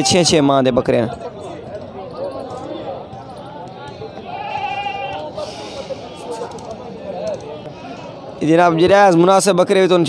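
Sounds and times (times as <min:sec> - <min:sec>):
chatter of voices: 0:00.0 - 0:10.0
goat bleating: 0:04.2 - 0:05.2.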